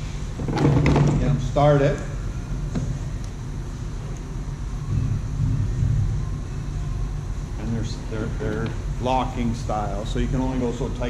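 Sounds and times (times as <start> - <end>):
low machine hum and rumble: 0.0 - 11.0.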